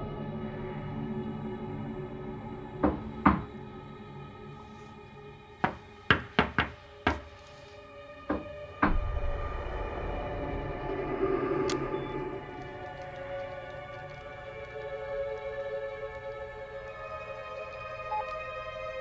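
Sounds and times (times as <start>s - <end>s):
low sustained horror drone: 0.0s - 5.6s, 7.7s - 19.0s
quiet music bed: 0.0s - 19.0s.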